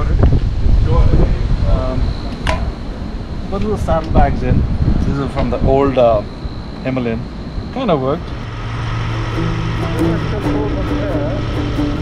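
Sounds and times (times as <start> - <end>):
voice: 0.0 - 2.7, 3.5 - 8.4, 9.7 - 11.9
wind noise on microphone: 0.0 - 12.0.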